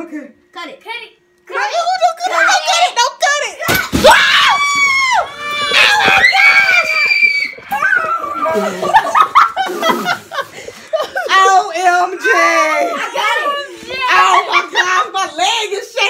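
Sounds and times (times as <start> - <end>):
people screaming with excitement: 4.1 - 9.4.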